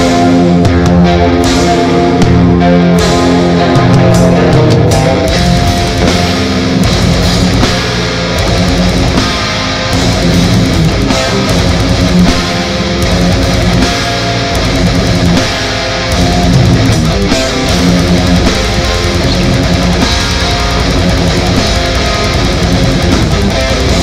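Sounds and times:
metal band playing live: 0.0 - 24.0.

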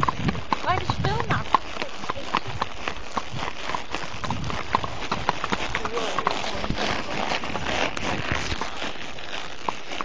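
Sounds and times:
horse hoofbeats: 0.0 - 10.0.

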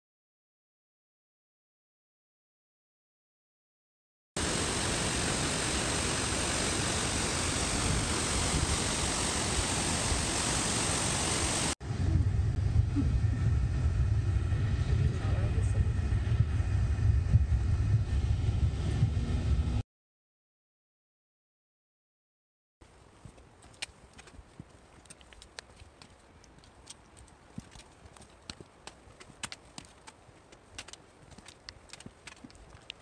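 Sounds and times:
waterfall roaring: 4.4 - 11.8
low uneven rumble: 11.8 - 19.8.

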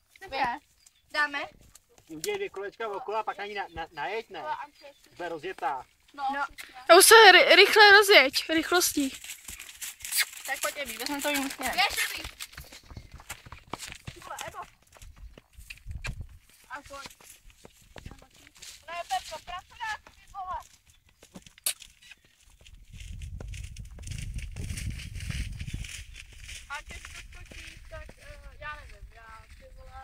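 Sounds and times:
wind rumbling on microphone: 10.5 - 17.0, 22.4 - 30.0.

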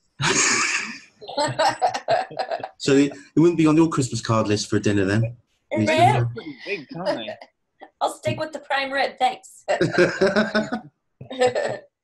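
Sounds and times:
people laughing: 0.2 - 3.9, 5.8 - 7.4, 9.7 - 11.8.

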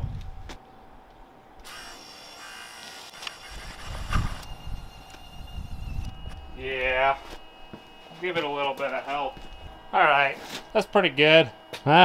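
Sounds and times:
motors whining: 1.6 - 12.0.

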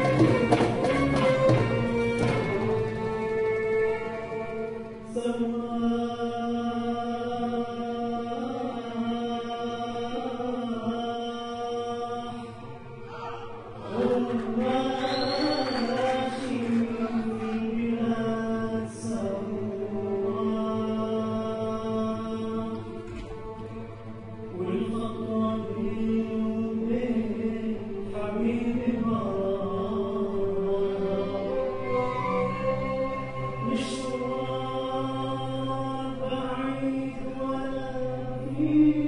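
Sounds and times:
choir singing: 0.0 - 39.0
string ensemble: 0.0 - 39.0
man singing long held notes: 2.6 - 39.0.

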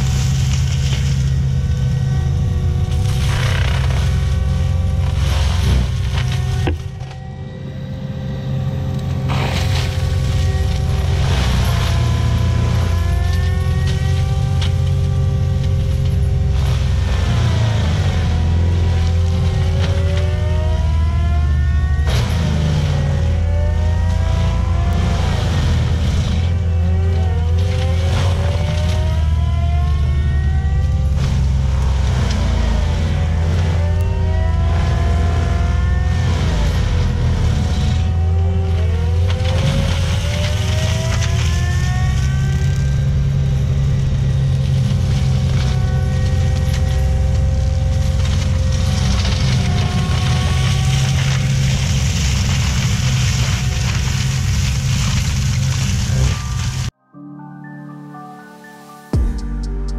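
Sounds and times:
wood cracking: 0.0 - 7.2, 8.8 - 57.0
diesel engine droning: 0.0 - 57.0
mulcher drum whine: 0.0 - 57.0.

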